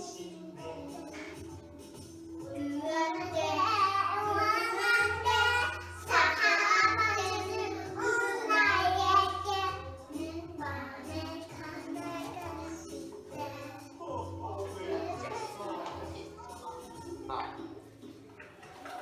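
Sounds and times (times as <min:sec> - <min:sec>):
children singing: 0:00.0 - 0:17.8
musical backing with repeating bass: 0:00.0 - 0:18.8.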